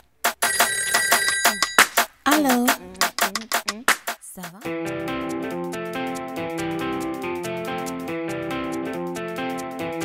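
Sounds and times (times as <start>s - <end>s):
bell ringing in rapid trill: 0.4s - 2.0s.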